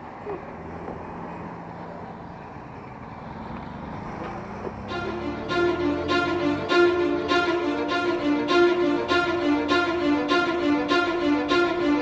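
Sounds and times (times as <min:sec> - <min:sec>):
electric scooter rumble: 0:00.0 - 0:09.3.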